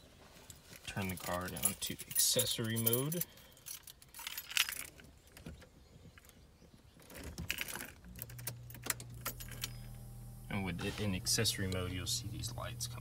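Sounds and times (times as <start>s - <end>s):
car keys jangling in ignition: 0.8s - 5.5s, 7.0s - 9.9s
steady low hum: 8.1s - 13.0s.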